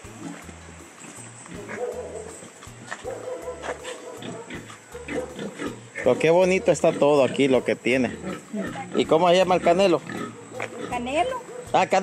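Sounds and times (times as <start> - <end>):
background music with bass line: 0.0 - 12.0
farm animal calls: 0.0 - 12.0.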